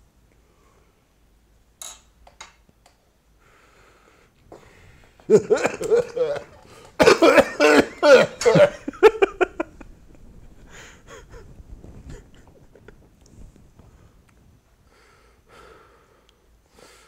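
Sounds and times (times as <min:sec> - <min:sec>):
man coughing: 0:05.3 - 0:09.2.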